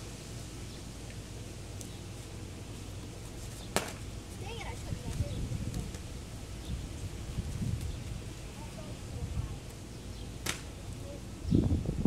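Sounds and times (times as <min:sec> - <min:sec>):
outdoor background noise: 0:00.0 - 0:12.0
plastic bottle hitting asphalt: 0:03.8 - 0:04.0, 0:10.4 - 0:10.7.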